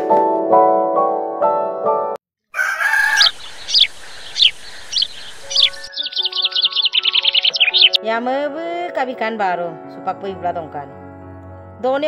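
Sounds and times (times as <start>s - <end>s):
rooster crowing: 2.5s - 7.0s
high chirping trills: 2.8s - 8.0s
bird chirping: 2.9s - 8.0s
keyboard music: 5.0s - 12.0s.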